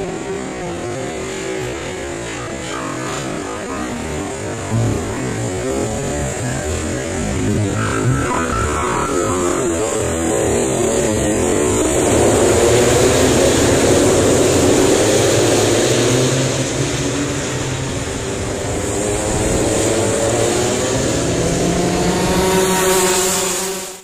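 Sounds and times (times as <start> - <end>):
racing kart engines at high revs: 0.0 - 24.0.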